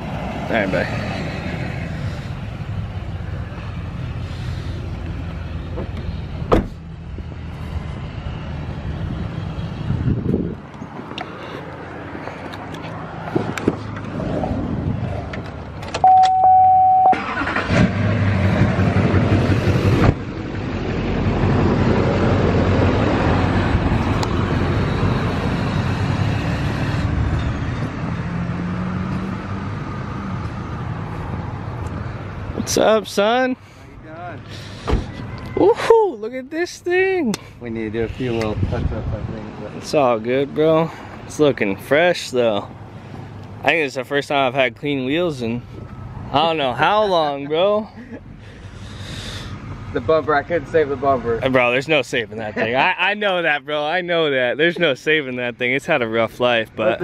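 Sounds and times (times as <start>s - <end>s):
electronic beep: 16.0s - 17.2s.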